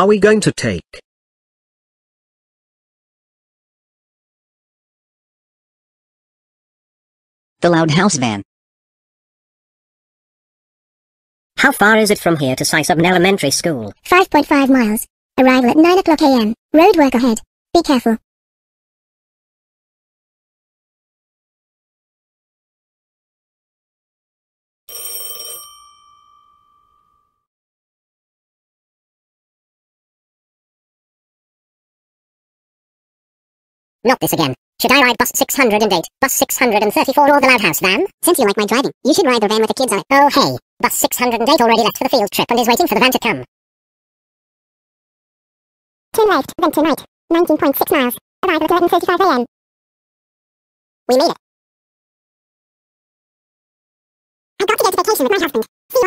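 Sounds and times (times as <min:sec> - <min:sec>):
school bell ringing: 0:24.9 - 0:27.4.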